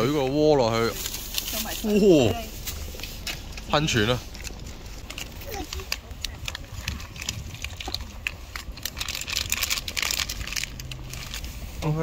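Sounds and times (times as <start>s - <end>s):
low rumble: 0.0s - 12.0s
heating pack crackling and popping: 0.7s - 12.0s.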